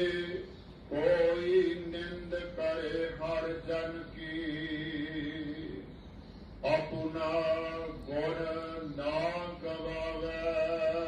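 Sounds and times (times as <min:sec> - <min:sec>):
person chanting prayer: 0:00.0 - 0:05.9, 0:06.6 - 0:11.0.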